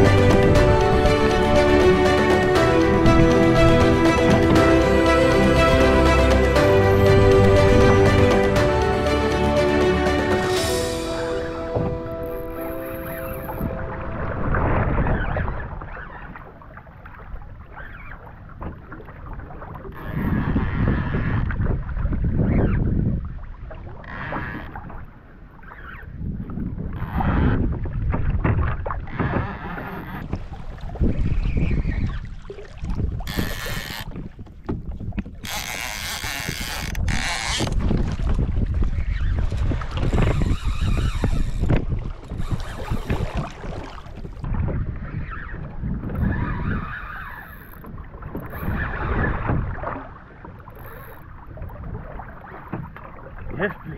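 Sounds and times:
water splashing against hull: 0.0 - 53.9
wind buffeting microphone: 13.4 - 24.0, 26.0 - 53.9.

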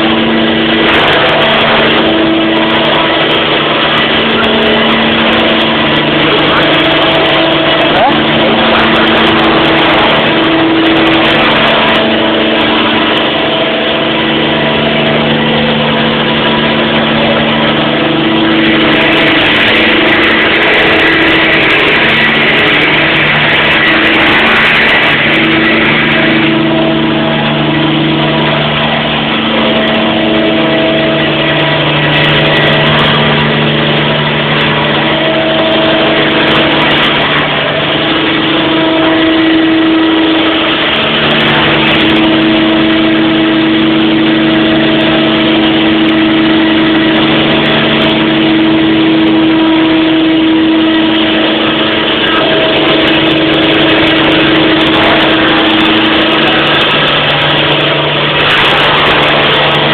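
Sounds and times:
rc helicopter whine and hum: 0.0 - 59.9.

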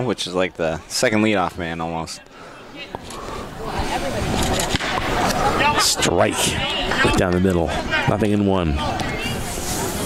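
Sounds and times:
chatter of players and spectators: 0.0 - 10.0.

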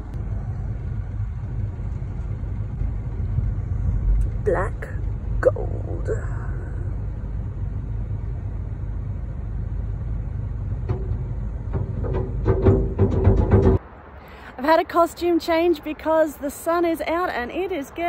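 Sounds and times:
vehicle engine rumbling: 0.0 - 15.1.

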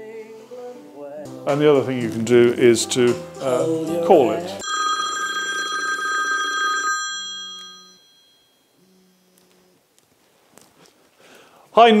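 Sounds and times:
phone ringtone through speaker: 4.6 - 8.8.

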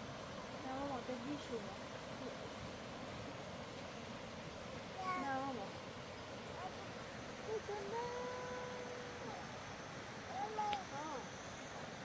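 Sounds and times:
river rushing: 0.0 - 12.0.

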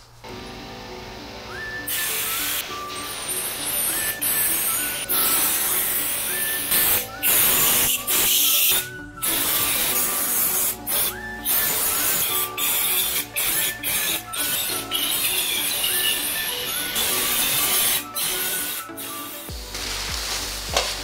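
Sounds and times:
background music: 0.2 - 21.0
spray gun hissing: 1.4 - 21.0.

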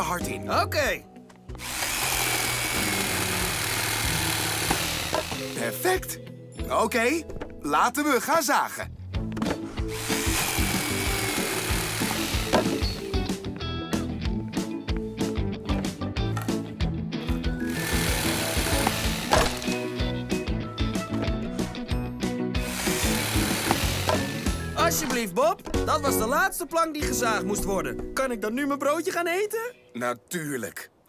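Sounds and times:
background music: 0.0 - 30.9
electric jigsaw cutting wood: 1.6 - 5.8, 9.9 - 13.1, 17.6 - 19.8, 22.6 - 24.6.

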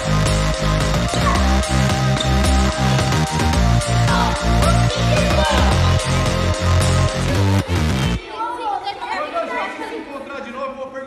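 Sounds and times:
children chattering: 4.0 - 7.3, 8.0 - 10.7.

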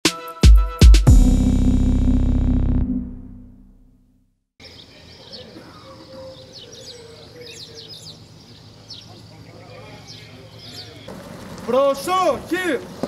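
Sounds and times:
small birds chirping: 4.6 - 11.2
outdoor background noise: 4.6 - 13.0.

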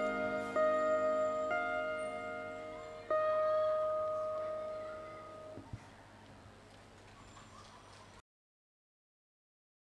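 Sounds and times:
live band held note ringing: 0.0 - 5.6
faint background noise: 0.0 - 8.2.

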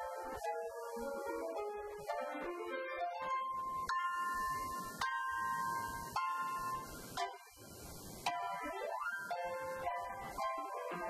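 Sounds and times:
grand piano slow high notes: 0.0 - 11.0.

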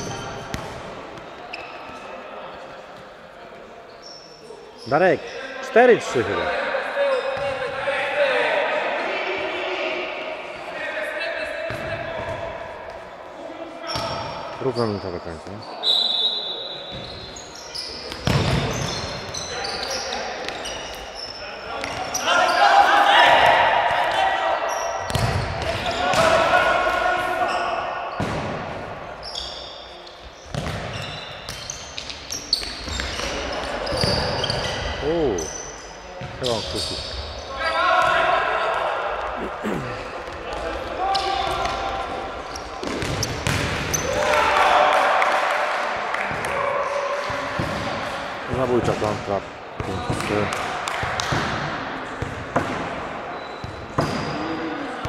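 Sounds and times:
short shoe squeaks: 1.5 - 2.0, 14.8 - 21.4, 29.2 - 34.8, 36.4 - 37.2, 53.3 - 54.5
players calling out: 4.0 - 30.2, 32.4 - 50.6
ball kicks and bounces echoing: 18.1 - 19.0, 25.0 - 26.4, 28.2 - 28.8, 30.5 - 33.3, 42.8 - 44.0, 47.3 - 48.1, 49.8 - 53.0.

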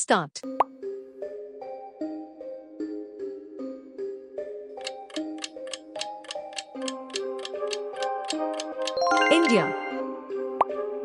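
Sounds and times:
background music with held notes: 0.4 - 11.0
countdown timer ticking: 4.8 - 10.7.

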